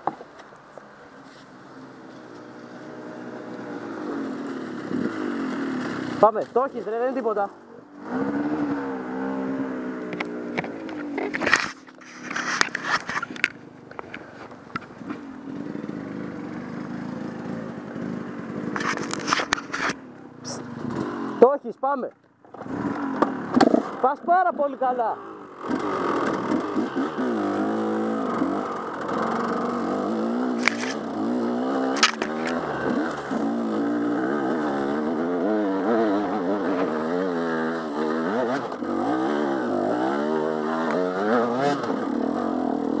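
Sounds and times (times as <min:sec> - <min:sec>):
dirt bike engine revving: 0:01.7 - 0:13.5, 0:14.8 - 0:21.7, 0:22.4 - 0:43.0.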